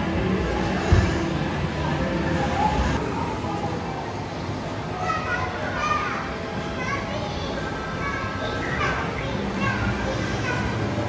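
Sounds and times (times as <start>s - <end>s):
steady background noise: 0.0s - 11.0s
young children talking: 1.8s - 11.0s.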